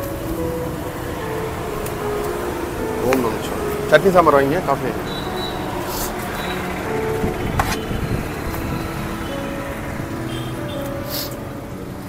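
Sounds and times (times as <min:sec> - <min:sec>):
roadside traffic noise: 0:00.0 - 0:12.0.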